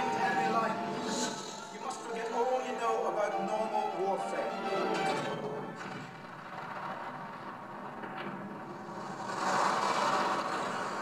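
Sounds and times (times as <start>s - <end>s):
trailer soundtrack through speakers: 0.0s - 11.0s.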